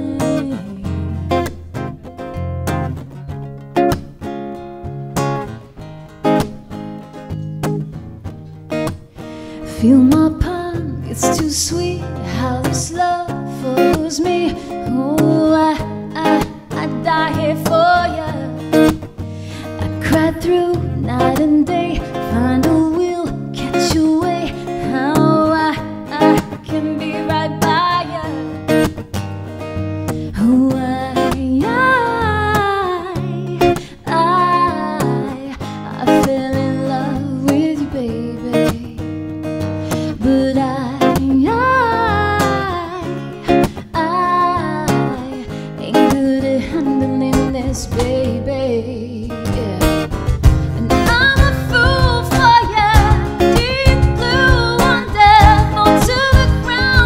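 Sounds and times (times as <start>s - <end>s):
woman singing: 0.0s - 1.6s, 9.6s - 29.0s, 30.2s - 57.0s
strummed acoustic guitar: 0.0s - 57.0s
cajon beats: 49.5s - 57.0s.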